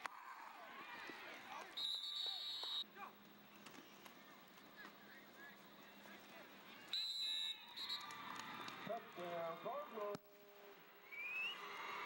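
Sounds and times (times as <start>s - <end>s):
referee's whistle blasts: 1.8s - 2.8s, 6.9s - 8.1s.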